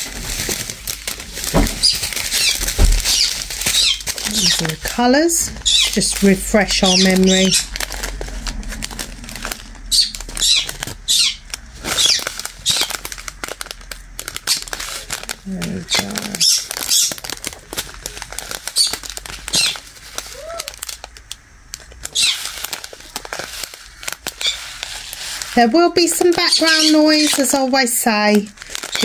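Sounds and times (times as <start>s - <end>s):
plastic packets crinkling: 0.0s - 29.0s
small stones clicking: 0.4s - 27.6s, 28.3s - 29.0s.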